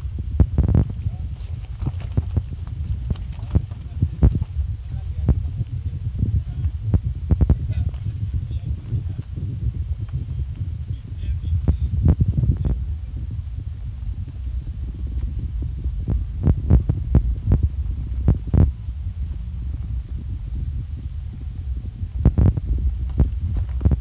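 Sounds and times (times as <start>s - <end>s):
tyres rumbling on gravel: 0.8s - 24.0s
stones knocking under wheels: 1.3s - 4.6s.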